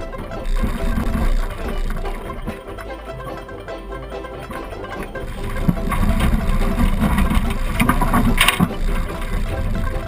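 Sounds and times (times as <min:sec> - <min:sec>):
car engine and road rumble: 0:00.0 - 0:10.0
car bouncing knocks: 0:04.5 - 0:10.0.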